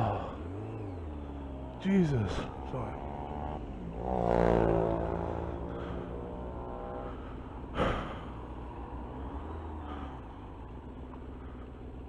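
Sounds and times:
motorcycle engine running: 0.0s - 12.0s
person sighing: 7.8s - 8.4s.

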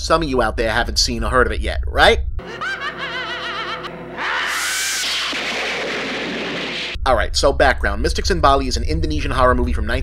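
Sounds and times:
loud crash of noise: 4.5s - 7.0s.

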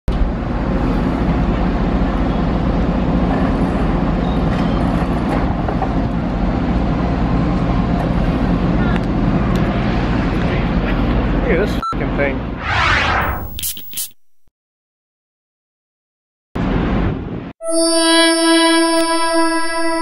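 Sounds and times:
loud motor rumble: 0.1s - 11.6s
people talking: 11.4s - 12.4s.

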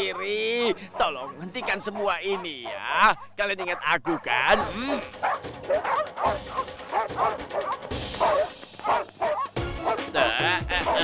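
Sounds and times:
cartoon dogs barking: 0.0s - 11.0s
background music: 4.0s - 11.0s.

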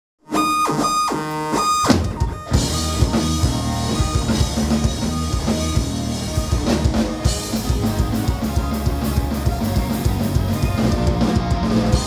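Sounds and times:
distorted electric guitars: 0.2s - 12.0s.

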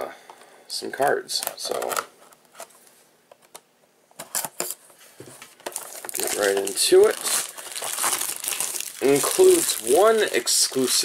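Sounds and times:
plastic shrink-wrap crinkling and tearing: 5.7s - 11.0s.

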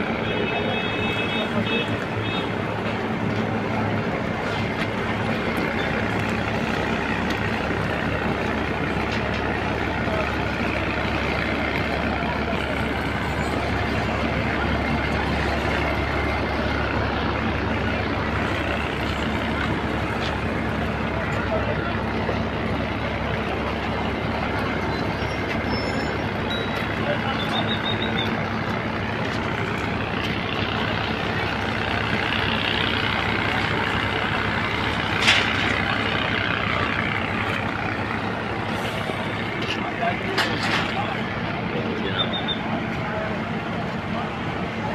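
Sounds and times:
locomotive passing slowly: 0.0s - 44.9s.

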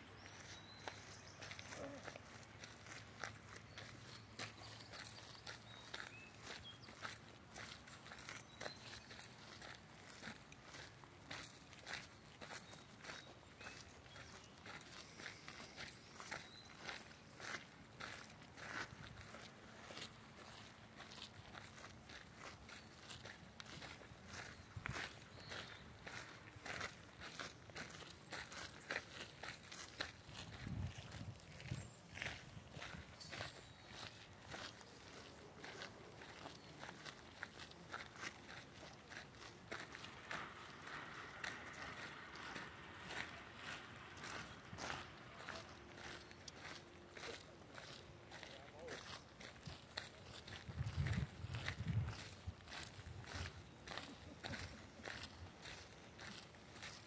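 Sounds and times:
footsteps on gravel path: 0.0s - 57.0s.

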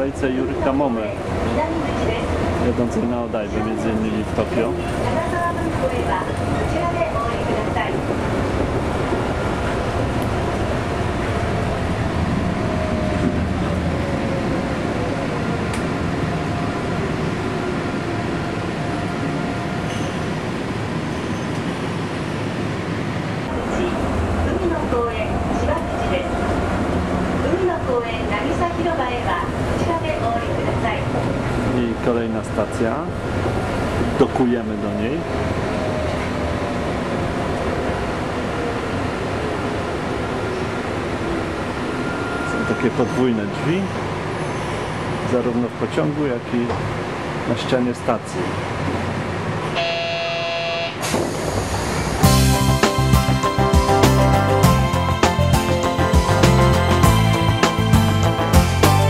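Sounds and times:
train rolling noise: 0.0s - 59.0s.

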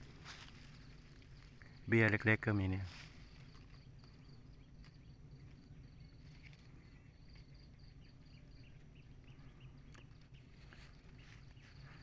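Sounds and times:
faint insect chirping: 0.0s - 12.0s.

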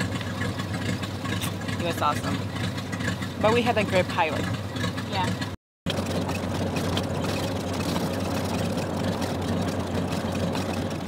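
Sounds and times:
plane engine and propeller droning: 0.0s - 11.0s.

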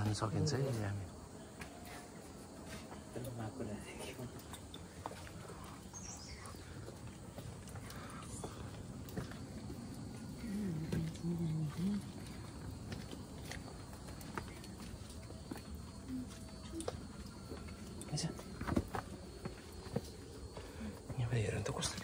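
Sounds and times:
low voice murmuring: 10.3s - 12.4s.

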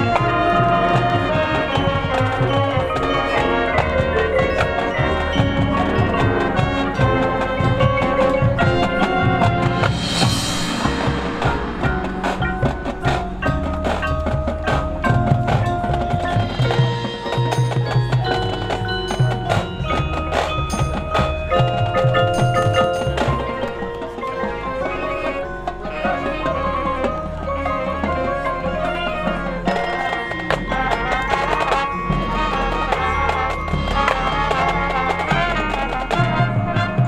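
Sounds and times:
drum hits: 0.0s - 26.2s
mallet percussion notes: 0.0s - 37.0s
marching band music: 0.0s - 37.0s
cymbal crash: 9.1s - 14.8s.

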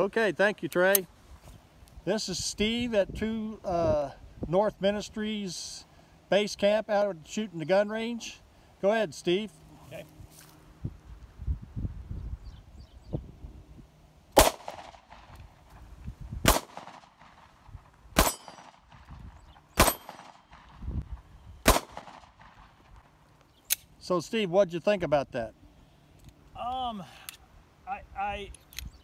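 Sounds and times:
pistol shots: 14.4s - 15.3s, 16.4s - 17.5s, 18.2s - 19.1s, 19.8s - 20.7s, 21.6s - 22.7s.

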